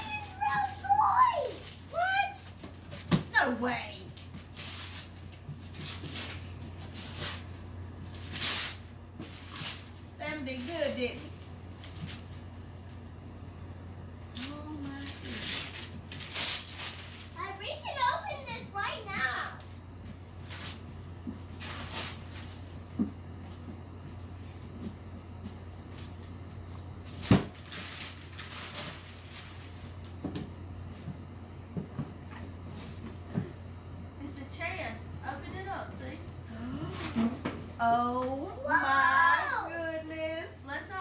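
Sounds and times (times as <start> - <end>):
wrapping paper rustling and tearing: 0.0 - 12.5, 14.3 - 19.7, 20.4 - 22.8, 25.9 - 30.2
steady low hum: 0.0 - 41.0.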